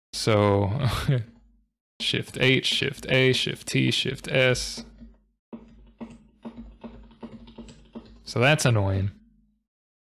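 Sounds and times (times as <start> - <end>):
keyboard keys clicking: 4.2 - 8.6.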